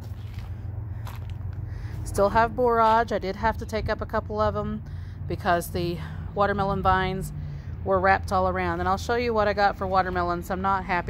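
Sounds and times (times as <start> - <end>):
footsteps on loose soil: 0.0 - 3.2.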